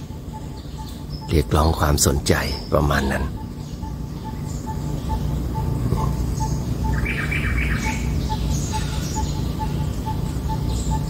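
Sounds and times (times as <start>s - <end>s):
bird single-note call: 0.0s - 11.0s
high bird chirps: 0.0s - 11.0s.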